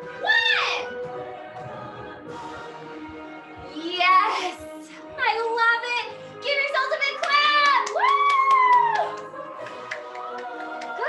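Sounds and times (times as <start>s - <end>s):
backing music: 0.0s - 11.0s.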